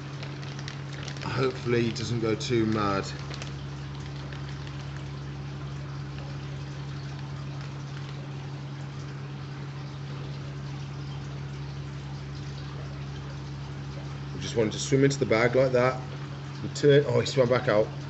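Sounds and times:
pump humming: 0.0s - 18.0s
water splashing and bubbling: 0.0s - 18.0s.

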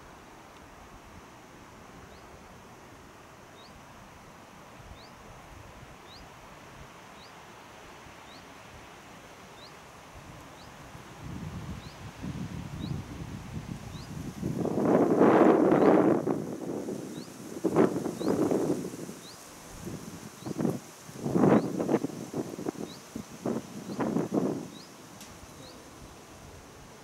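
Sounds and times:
wind rustling tree foliage: 0.0s - 27.0s.

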